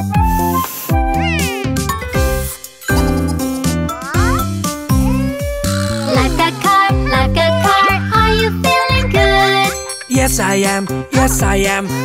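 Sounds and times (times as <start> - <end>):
cartoon background music: 0.0 - 12.0
cartoon cat meowing: 1.1 - 1.8, 3.9 - 8.4.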